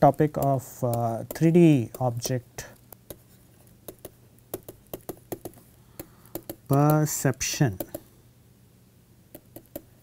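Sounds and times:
stylus tapping on tablet: 0.3 - 3.2, 3.8 - 7.1, 7.8 - 8.1, 9.3 - 10.0.

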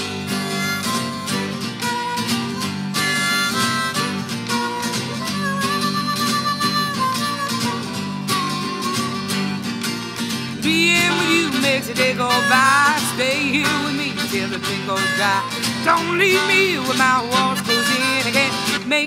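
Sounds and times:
harmonica solo: 0.0 - 19.0
strummed acoustic guitar: 0.0 - 19.0.

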